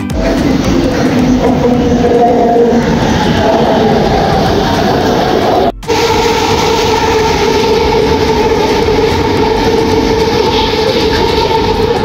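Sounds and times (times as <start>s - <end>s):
train rumbling into station: 0.0s - 12.0s
whining hum: 0.0s - 12.0s.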